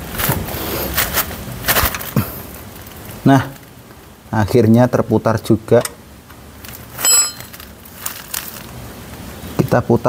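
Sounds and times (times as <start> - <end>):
metal spanner clinking down: 7.0 - 7.6.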